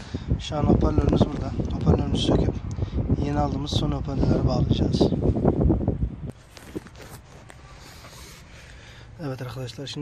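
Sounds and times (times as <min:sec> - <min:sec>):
wind rumble on microphone: 0:00.0 - 0:07.5.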